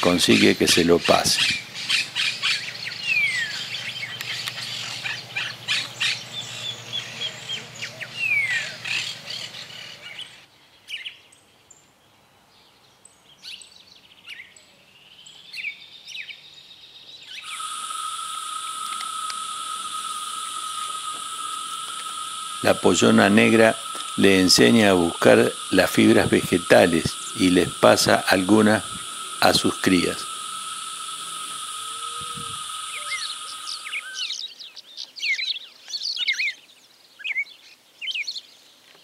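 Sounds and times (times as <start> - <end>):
high insect trill: 0.0 - 7.7, 17.4 - 34.4
grebes chirping and calling: 0.0 - 10.4, 17.4 - 34.4
low steady hum: 17.4 - 34.2
falling whistles: 17.4 - 34.4.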